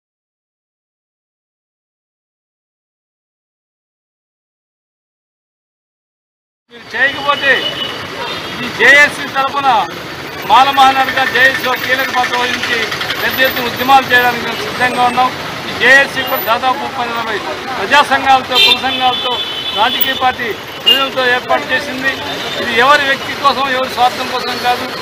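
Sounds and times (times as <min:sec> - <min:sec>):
man speaking into microphone: 0:06.8 - 0:07.8, 0:08.6 - 0:25.0.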